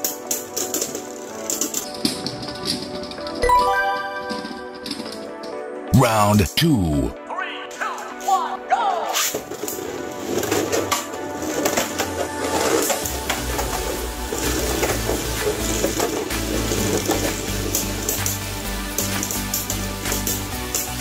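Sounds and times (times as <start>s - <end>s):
background music with bass line: 13.1s - 21.0s.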